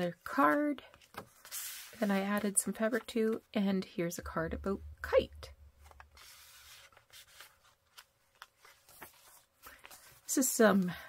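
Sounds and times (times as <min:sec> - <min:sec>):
paper rustling: 0:06.1 - 0:10.3.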